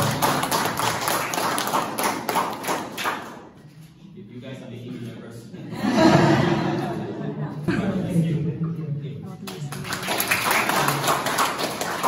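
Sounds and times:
audience applauding: 0.0s - 3.4s, 9.5s - 12.0s.

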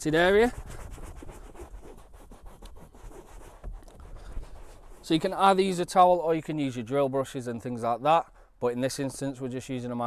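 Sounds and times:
towel scrubbing cloth seat: 0.1s - 5.4s.

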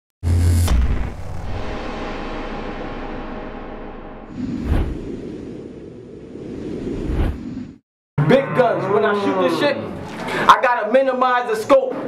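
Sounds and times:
deep rumbling noise: 0.6s - 7.8s.

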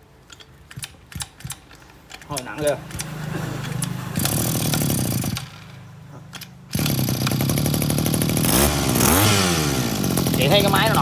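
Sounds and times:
two-stroke engine revving: 2.3s - 5.9s, 6.7s - 11.0s.

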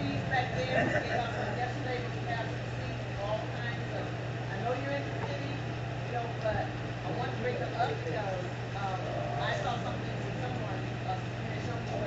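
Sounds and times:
indistinct voices talking: 0.0s - 4.2s, 5.0s - 12.0s
steady low hum: 0.0s - 12.0s.

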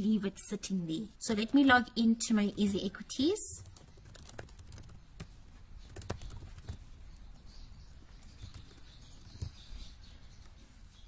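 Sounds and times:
keyboard typing: 3.6s - 7.4s, 8.0s - 9.8s.

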